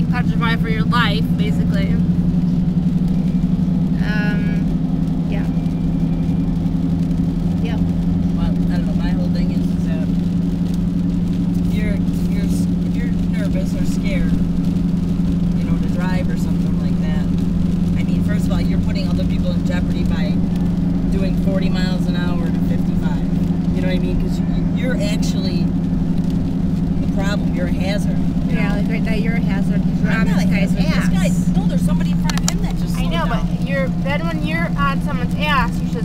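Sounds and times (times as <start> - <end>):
car engine and road drone: 0.0 - 36.0.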